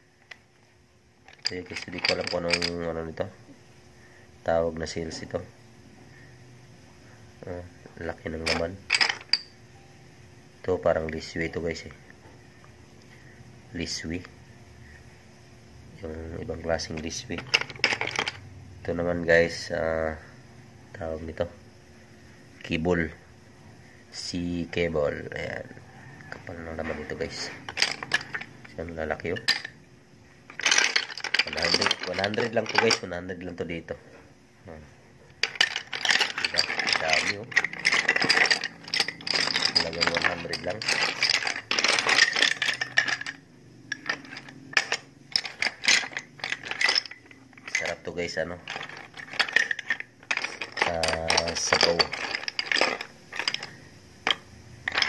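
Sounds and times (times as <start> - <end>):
seashells clacking together: 27.4 - 29.7, 30.5 - 33.1, 35.4 - 47.9, 48.7 - 55.0.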